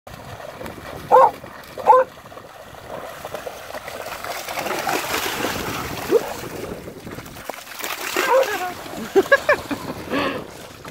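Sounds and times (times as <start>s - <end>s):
dogs splashing through water: 0.1s - 10.9s
dog barking: 1.1s - 2.1s, 8.2s - 8.6s.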